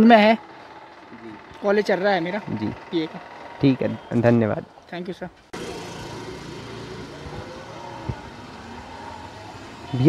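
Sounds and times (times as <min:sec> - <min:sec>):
motor vehicle engine running: 0:00.0 - 0:10.0.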